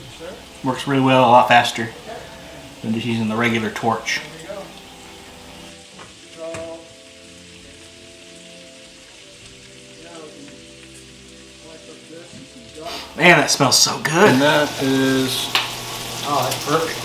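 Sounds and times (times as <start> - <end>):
meat sizzling: 0.0 - 17.0.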